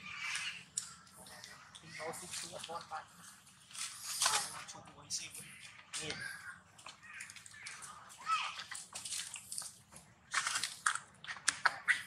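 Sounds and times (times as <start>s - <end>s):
macaques chewing food: 0.0s - 12.0s.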